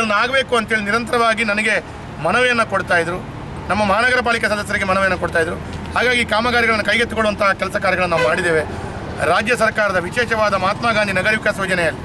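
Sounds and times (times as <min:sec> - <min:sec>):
man speaking: 0:00.0 - 0:12.0
road traffic hum: 0:00.0 - 0:12.0.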